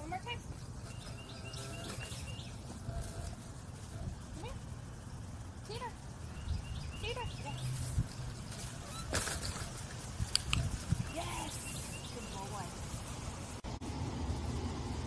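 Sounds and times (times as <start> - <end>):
indoor background noise: 0.0 - 15.0
faint chirping calls: 0.2 - 12.9.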